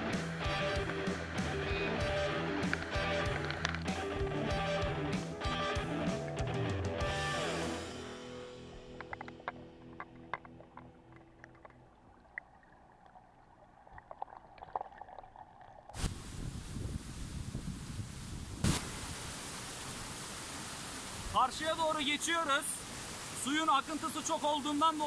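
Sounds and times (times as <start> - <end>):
small underwater clicks: 2.6 - 4.0, 8.9 - 15.3.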